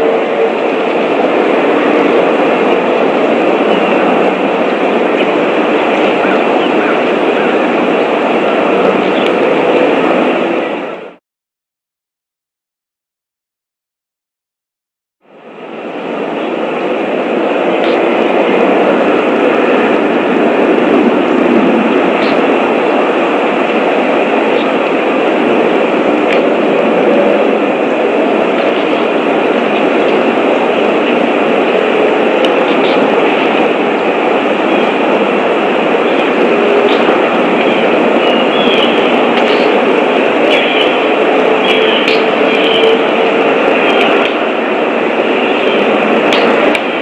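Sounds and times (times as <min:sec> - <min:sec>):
loud rushing noise: 0:00.0 - 0:11.2, 0:15.2 - 0:47.0.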